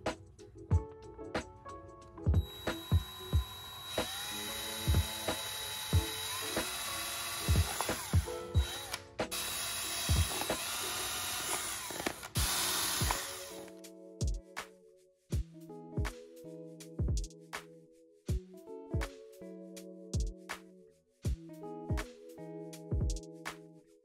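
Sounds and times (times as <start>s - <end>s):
background music with steady beat: 0.0s - 24.0s
power drill boring through hardboard: 2.4s - 13.7s.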